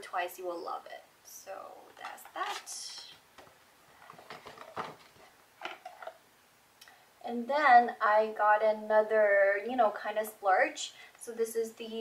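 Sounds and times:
packaging clicks and rustles: 0:04.0 - 0:06.2.

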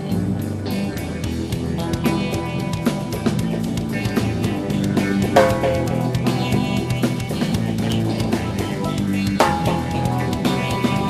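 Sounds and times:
electric guitar: 0:00.0 - 0:11.0
drum kit hits: 0:05.2 - 0:08.0, 0:09.4 - 0:10.9.

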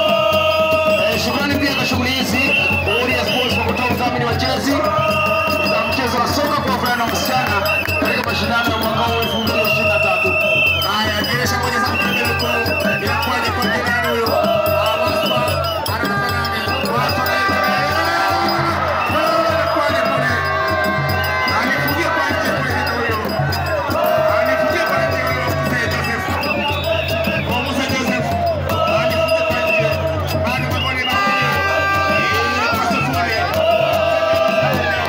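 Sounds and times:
crowd: 0:00.0 - 0:35.0
drums beaten fast: 0:00.0 - 0:35.0
many voices singing and chanting: 0:00.0 - 0:35.0.

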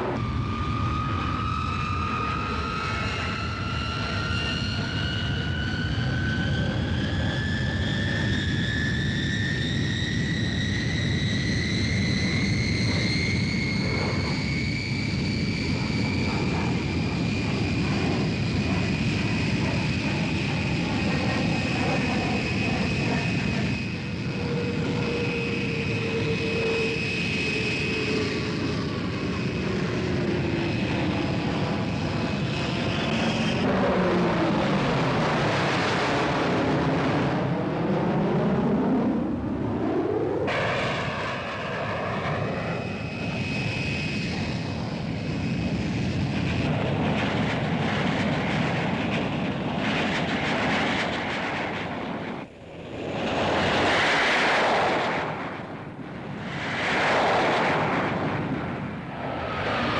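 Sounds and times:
jet engines roaring: 0:00.0 - 0:59.9.

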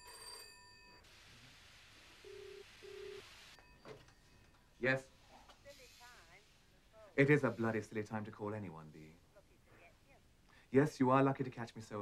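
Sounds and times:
telephone double ring: 0:00.0 - 0:01.0.

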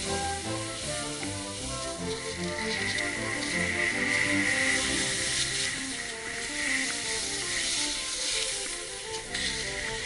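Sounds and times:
background music: 0:00.0 - 0:10.0
skis hissing over snow: 0:00.0 - 0:10.0.

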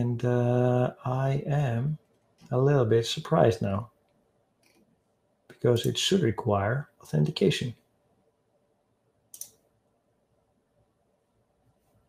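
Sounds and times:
computer mouse click: 0:09.3 - 0:09.6.

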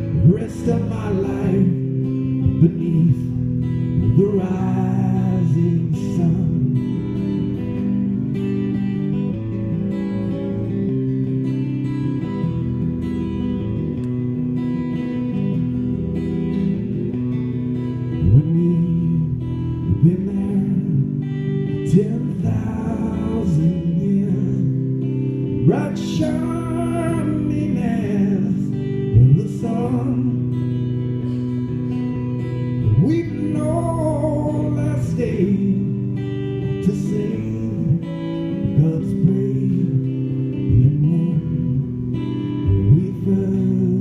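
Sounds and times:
acoustic guitar chords: 0:00.0 - 0:44.0.

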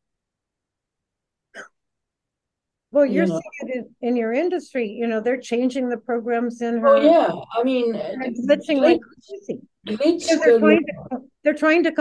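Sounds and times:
short vocal sound: 0:06.8 - 0:08.3.

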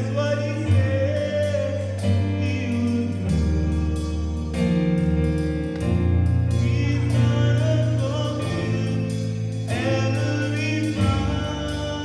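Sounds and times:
keyboard sustained low chords: 0:00.0 - 0:12.0
person singing: 0:00.0 - 0:12.0.

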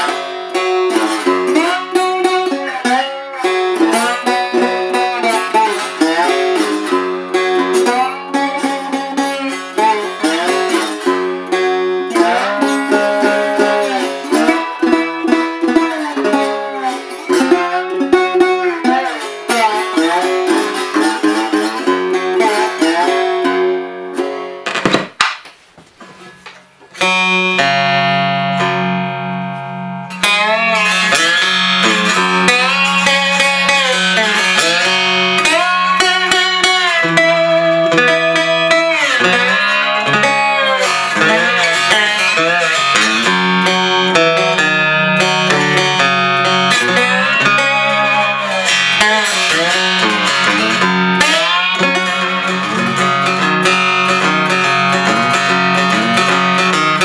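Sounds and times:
guitar chord ringing: 0:00.0 - 0:24.8, 0:27.0 - 0:57.0
slide guitar picking: 0:00.0 - 0:25.2, 0:26.0 - 0:57.0.

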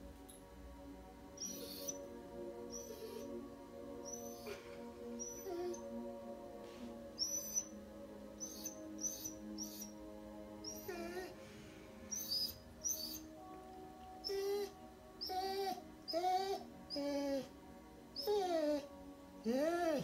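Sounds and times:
dog whining: 0:01.4 - 0:02.0, 0:02.7 - 0:03.4, 0:04.0 - 0:05.9, 0:07.2 - 0:07.7, 0:08.4 - 0:10.0, 0:10.6 - 0:11.4, 0:12.1 - 0:13.4, 0:14.2 - 0:17.5, 0:18.2 - 0:20.0.

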